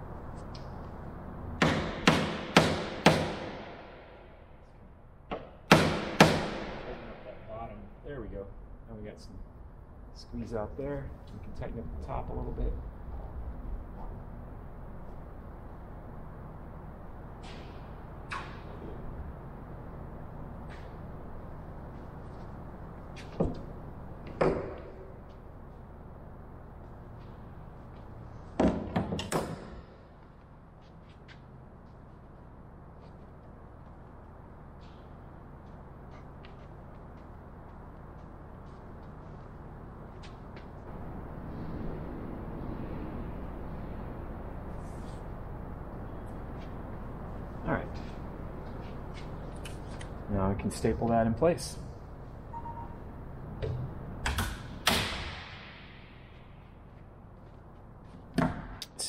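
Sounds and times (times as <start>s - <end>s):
low workshop hum: 0.0s - 59.0s.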